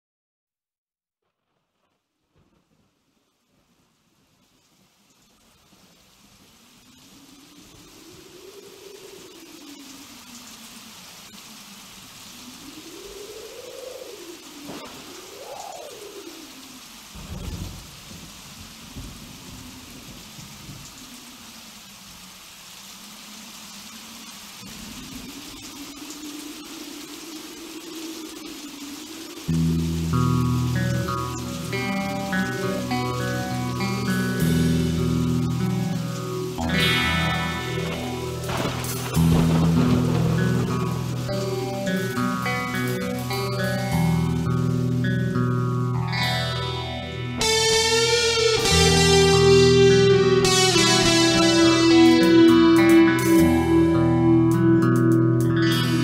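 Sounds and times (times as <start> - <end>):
rain hiss: 1.4 - 56.0
thunder rumble: 4.8 - 22.3, 24.3 - 45.1.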